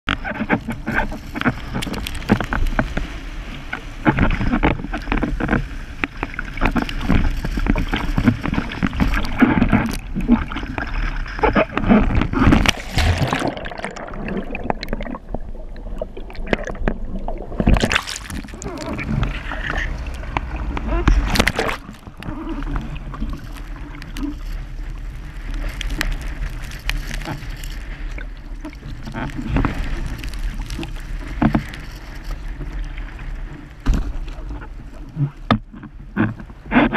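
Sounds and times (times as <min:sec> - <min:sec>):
choppy water splashing: 0:00.0 - 0:36.9.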